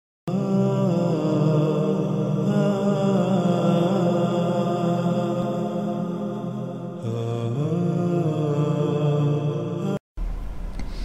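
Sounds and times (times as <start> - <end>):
chanted vocal music: 0.3 - 10.0.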